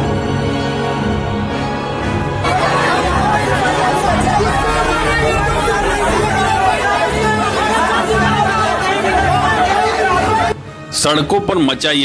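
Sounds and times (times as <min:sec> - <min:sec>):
crowd talking and calling out: 0:02.0 - 0:10.6.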